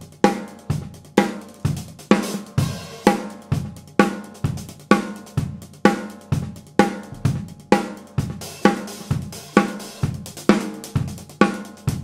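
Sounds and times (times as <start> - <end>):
drum kit groove: 0.0 - 12.0.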